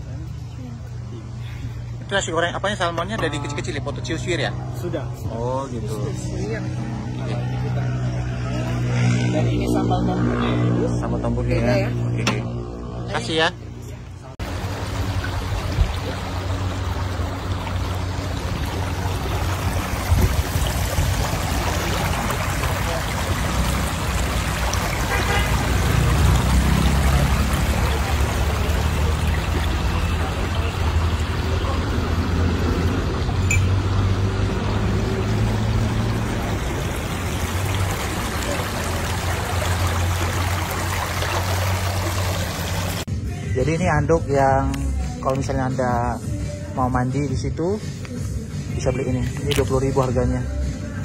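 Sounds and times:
stream flowing over stones: 14.4 - 43.1, 47.8 - 51.0.

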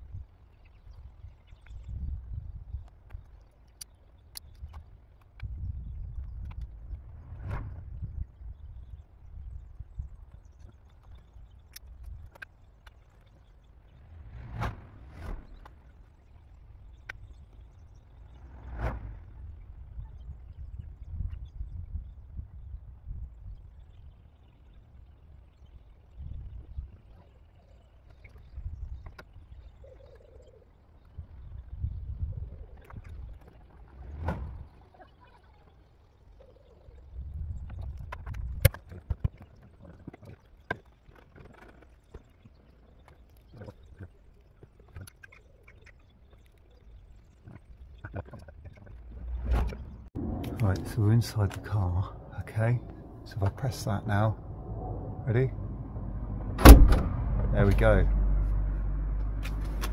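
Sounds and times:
low rumbling: 5.4 - 10.2, 13.6 - 24.0, 48.7 - 59.9
clicks and rustles of wiring work: 37.6 - 46.6.

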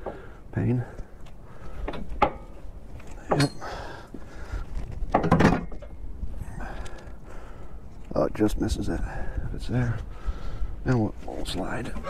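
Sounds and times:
wind rumble on microphone: 4.2 - 12.0.

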